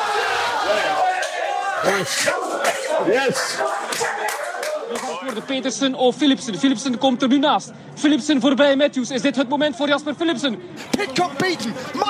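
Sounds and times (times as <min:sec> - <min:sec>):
people shouting excitedly: 0:00.0 - 0:05.2.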